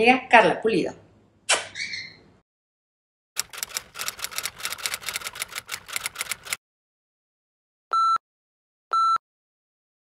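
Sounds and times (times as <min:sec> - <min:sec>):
rapid sharp clicks: 0:03.4 - 0:06.6.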